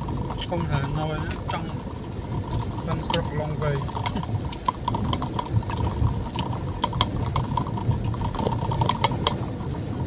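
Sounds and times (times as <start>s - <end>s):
car engine and road noise: 0.0s - 10.0s.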